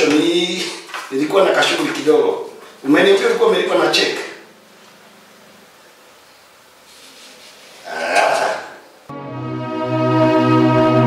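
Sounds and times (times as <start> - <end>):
low steady hiss: 0.0 - 9.1.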